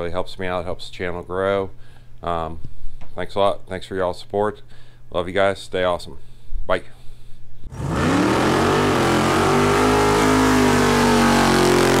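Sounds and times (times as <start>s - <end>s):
engine revving: 7.7s - 12.0s.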